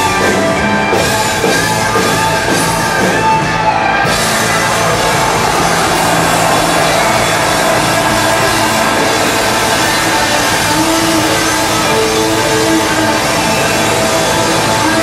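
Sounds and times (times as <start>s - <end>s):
drums: 0.0s - 15.0s
electric guitar: 0.0s - 15.0s.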